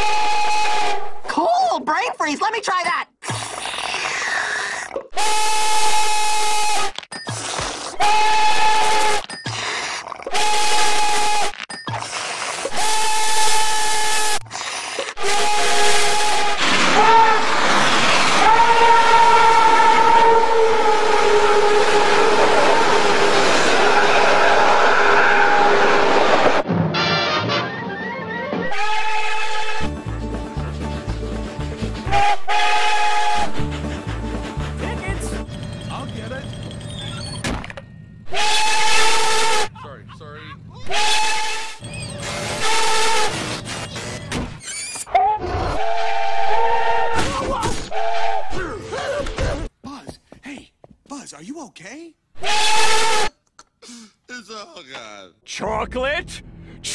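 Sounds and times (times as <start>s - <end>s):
steam locomotive whistle blasts: 0.0s - 1.1s, 5.2s - 6.9s, 8.0s - 9.2s, 10.3s - 11.5s, 12.7s - 14.4s, 15.2s - 17.5s, 18.4s - 27.8s, 28.7s - 29.9s, 32.1s - 33.6s, 38.3s - 39.7s, 40.9s - 41.8s, 42.5s - 43.5s
cartoon music: 33.4s - 37.2s.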